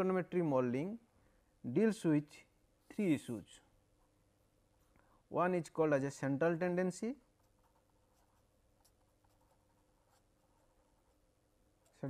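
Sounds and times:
faint steady hum: 0.0s - 12.0s
marker pen scratching on paper: 3.6s - 5.2s, 7.1s - 12.0s.

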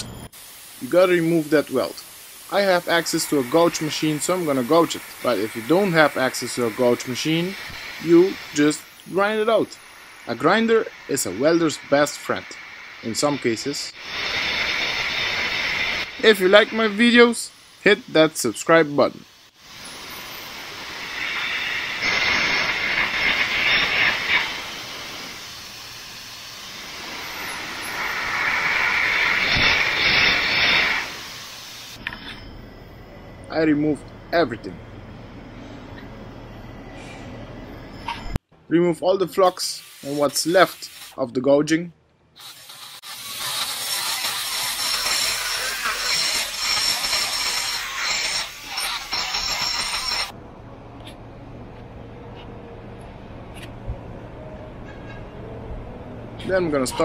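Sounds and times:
carbon arc hissing and crackling: 0.0s - 32.4s, 39.4s - 41.2s, 42.4s - 50.4s
die grinder grinding steel: 2.4s - 18.0s, 19.8s - 32.5s, 42.4s - 50.3s.

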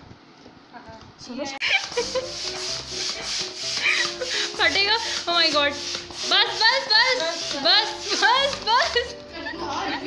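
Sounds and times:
air pump inflating balloon: 1.6s - 9.1s.

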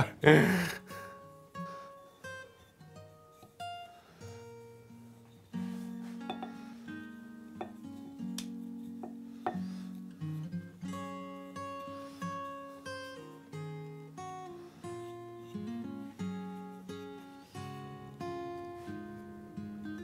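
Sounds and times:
plucked acoustic guitar notes: 0.0s - 20.0s.

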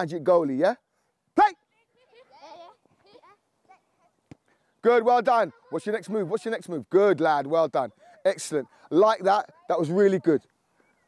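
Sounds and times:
man speaking: 0.0s - 0.8s, 1.4s - 1.6s, 4.8s - 10.5s.

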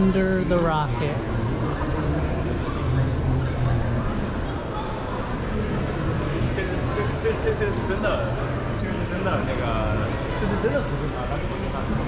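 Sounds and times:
chatter of voices echoing: 0.0s - 12.0s
high-pitched squeak: 8.8s - 9.2s.

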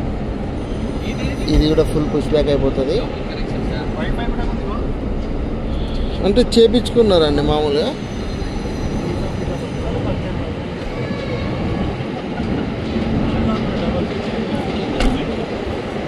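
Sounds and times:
passing train rumbling: 0.0s - 16.0s.

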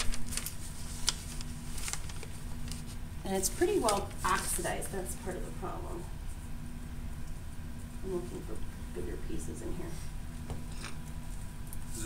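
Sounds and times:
faint constant hum: 0.0s - 12.0s
low room rumble: 0.0s - 12.0s.

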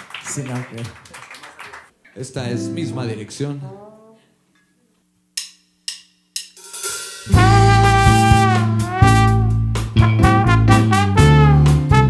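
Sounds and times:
trombone long notes: 3.6s - 4.4s, 7.3s - 12.0s
drumstick clicks: 5.4s - 6.6s
drum kit: 5.4s - 12.0s.

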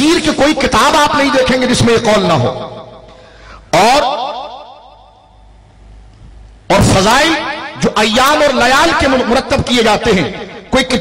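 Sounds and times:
man's voice echoing through pa: 0.0s - 5.3s, 6.7s - 11.0s.

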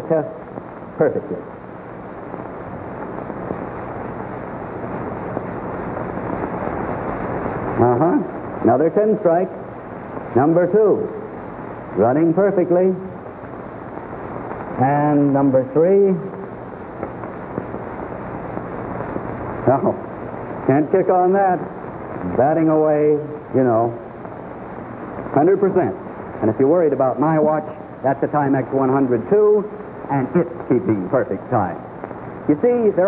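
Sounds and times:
television soundtrack hiss and rumble: 0.0s - 33.0s.

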